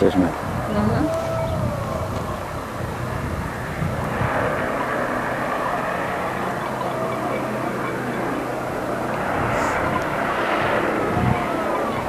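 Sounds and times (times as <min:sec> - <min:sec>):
low hum: 0:00.0 - 0:12.0
steady drone with hiss: 0:00.0 - 0:12.0.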